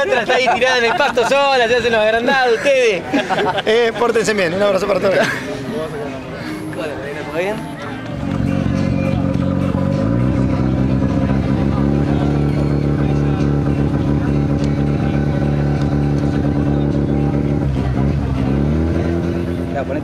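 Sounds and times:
car engine revving: 8.2 - 20.0.

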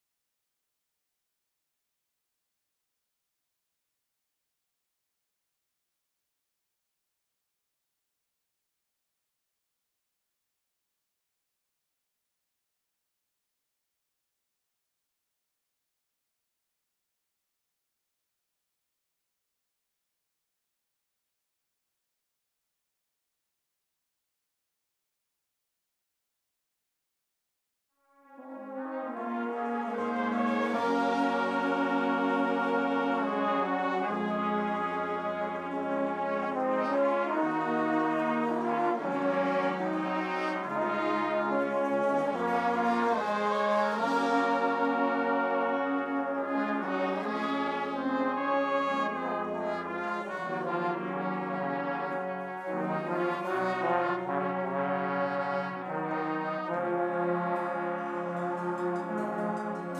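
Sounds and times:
brass band playing: 28.2 - 59.9.

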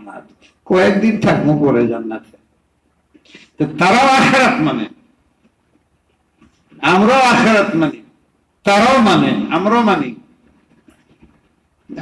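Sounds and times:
man preaching: 0.0 - 2.4, 3.5 - 5.0, 6.8 - 10.3.

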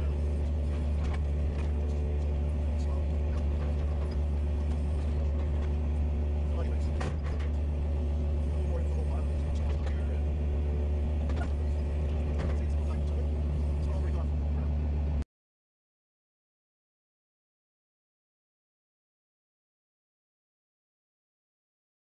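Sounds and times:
faint clicks and rattles: 0.0 - 14.7
heavy equipment engine running: 0.0 - 15.2.

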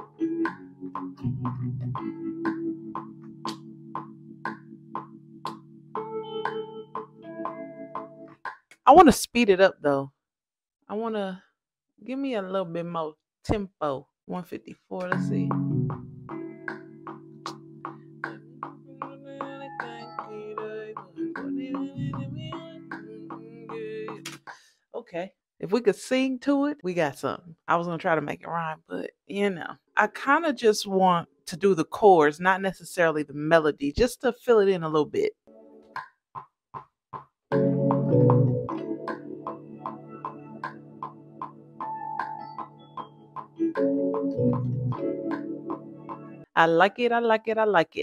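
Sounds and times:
electric piano chord: 0.0 - 8.3
electric piano melody: 0.0 - 8.4, 15.2 - 24.1, 37.5 - 46.5
metronome click: 6.3 - 8.1.

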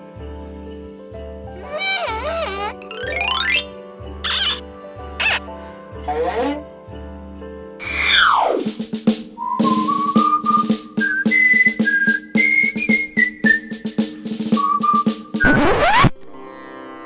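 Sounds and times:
whistled tune: 1.6 - 4.6, 9.4 - 16.1
snare drum beat: 8.6 - 15.5
falling whistle glide: 9.4 - 13.8.

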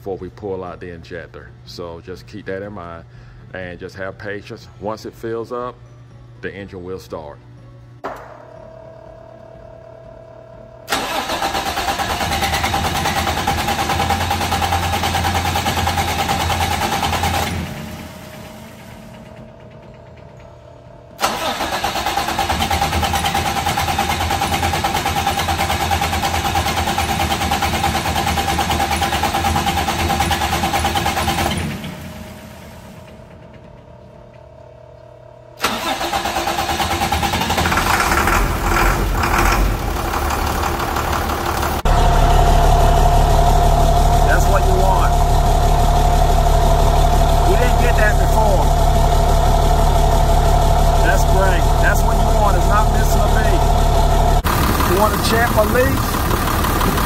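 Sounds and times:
diesel engine idling: 10.9 - 20.0, 21.2 - 33.5, 35.6 - 57.0
diesel engine cranking: 10.9 - 34.1, 35.6 - 57.0.

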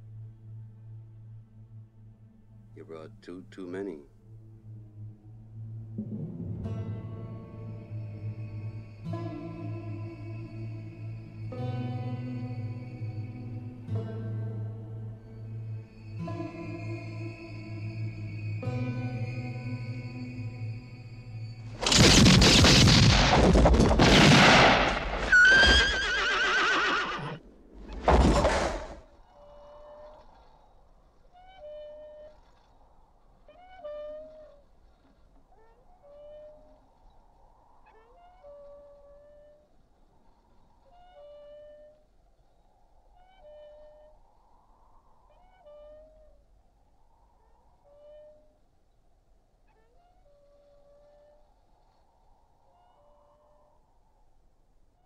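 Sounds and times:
horse whinnying: 24.8 - 27.4.

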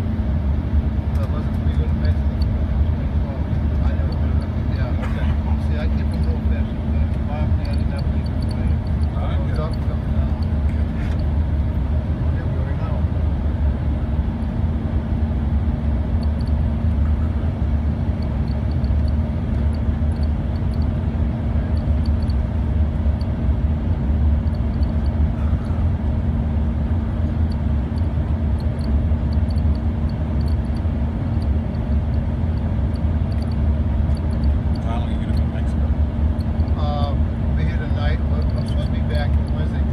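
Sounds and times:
constant cabin hum: 0.0 - 39.9
jet engine and airflow rumble: 0.0 - 39.9.

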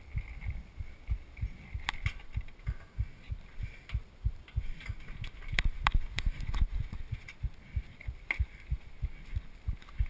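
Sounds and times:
low dull thumps: 0.0 - 10.0.

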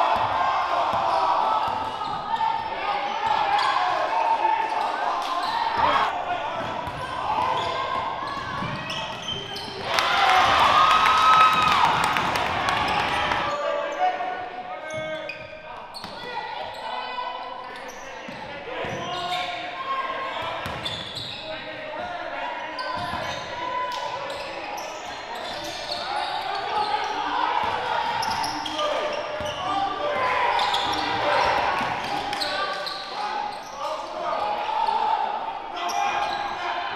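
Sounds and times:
crowd shouting and cheering: 0.0 - 14.9, 26.1 - 36.9.

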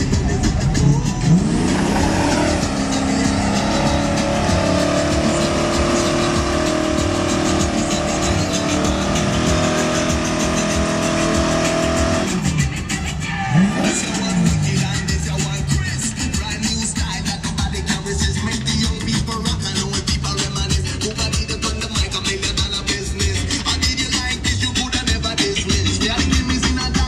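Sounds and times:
car engine revving: 0.0 - 27.0
music: 0.0 - 27.0.

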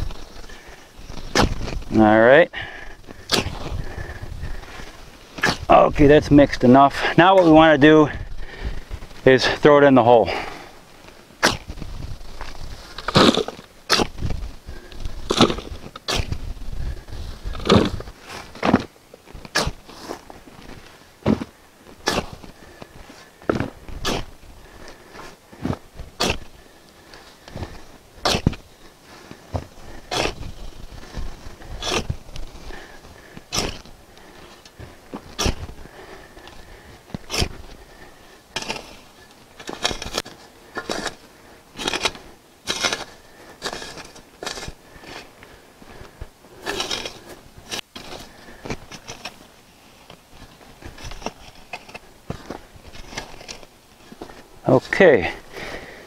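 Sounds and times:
shovel scraping soil: 0.0 - 2.4, 3.1 - 8.2, 9.0 - 55.8
loose dirt falling: 0.0 - 56.0.

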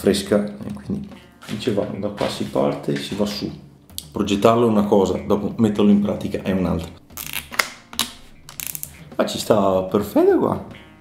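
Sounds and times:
cable tie ratchet clicking: 7.2 - 9.0.

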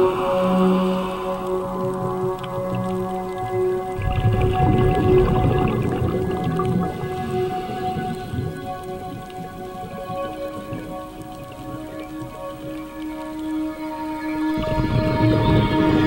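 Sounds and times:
slow ambient music: 0.0 - 16.0.

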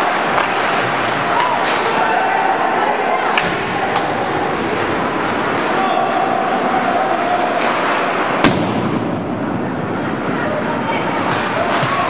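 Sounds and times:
puck hitting rink boards: 0.0 - 2.1, 3.3 - 5.8, 7.4 - 9.2, 11.2 - 12.0
spectator chatter: 0.0 - 12.0.

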